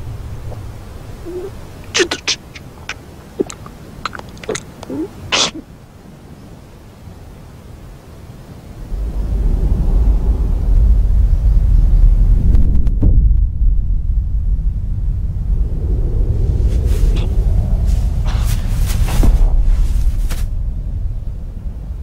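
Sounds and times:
deep loud rumble: 0.0s - 2.0s, 8.8s - 22.0s
sharp breath: 1.3s - 5.6s.

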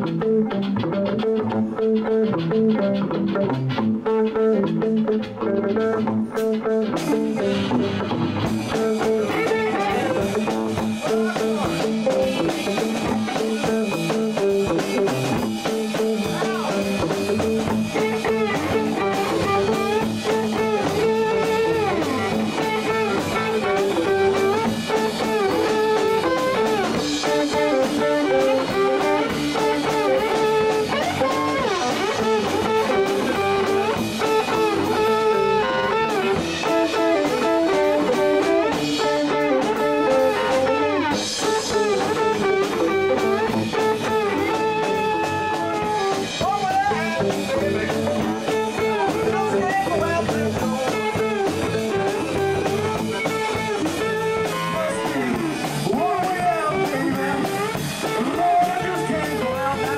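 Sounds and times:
drum kit: 0.0s - 59.9s
electric guitars: 0.0s - 59.9s
guitar lead with bent notes: 0.0s - 59.9s.

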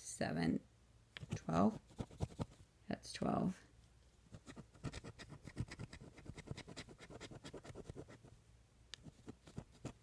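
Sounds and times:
coin scratching lottery ticket: 4.4s - 8.2s.

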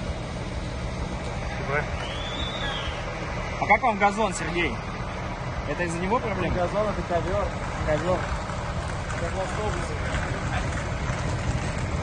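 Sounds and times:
bus engine idling: 0.0s - 12.0s.

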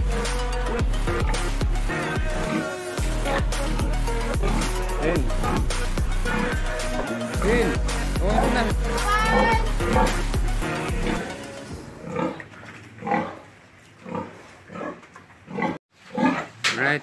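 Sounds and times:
background music: 0.0s - 12.6s
pigs grunting: 4.2s - 16.6s.

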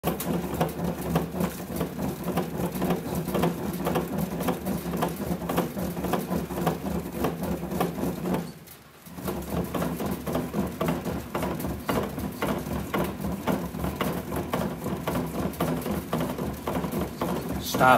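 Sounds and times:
bat-rolling machine hum: 0.0s - 17.9s.

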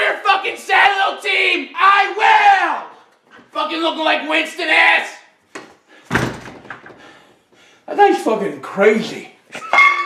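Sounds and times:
door slamming shut: 6.1s - 7.0s.

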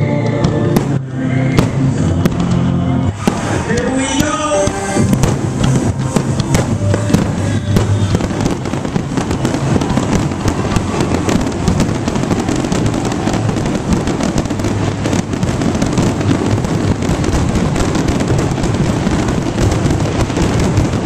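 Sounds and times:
fireworks bangs and crackles: 0.0s - 21.0s
loud music: 0.0s - 21.0s.

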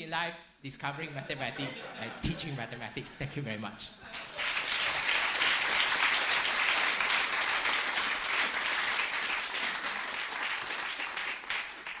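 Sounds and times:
audience applauding: 4.1s - 12.0s.

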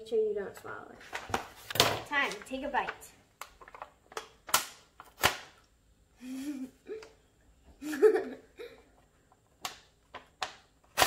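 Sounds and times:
girl humming: 6.2s - 7.1s
girl giggling: 6.2s - 8.9s.

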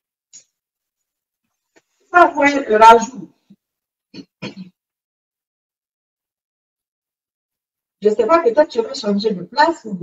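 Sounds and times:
woman clearing her throat: 4.1s - 4.8s.

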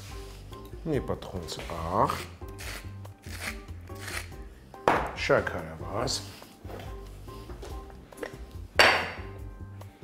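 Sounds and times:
spice mill grinding: 2.1s - 4.4s.

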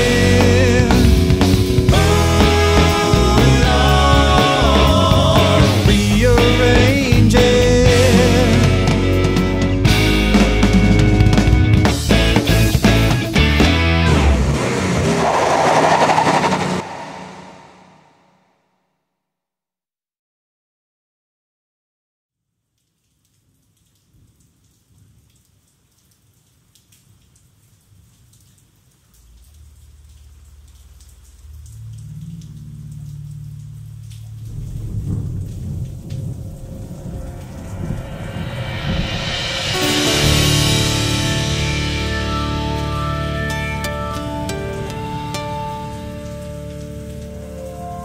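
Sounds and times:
rock band closing chord: 0.0s - 14.9s, 39.3s - 46.8s
rain: 0.0s - 17.7s, 22.5s - 48.0s
low thunder rumble: 14.4s - 18.1s, 31.6s - 41.7s
low steady tone: 29.7s - 39.4s.

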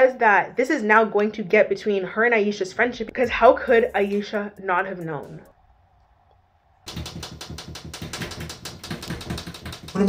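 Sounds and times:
rapid sharp tapping: 6.8s - 10.0s.

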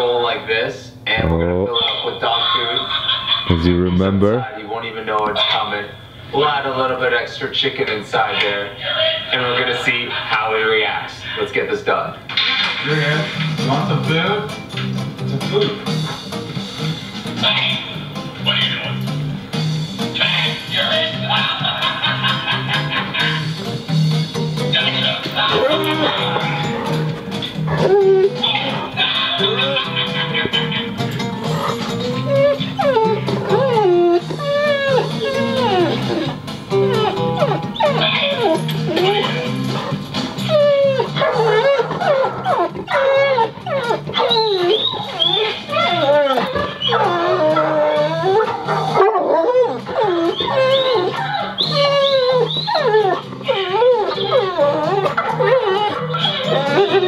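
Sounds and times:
dog whining and whimpering: 24.8s - 57.0s.

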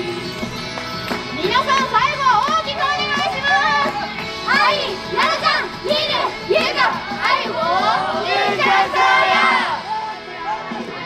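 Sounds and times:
pop backing track: 0.0s - 9.8s
girls shouting: 1.5s - 11.0s.

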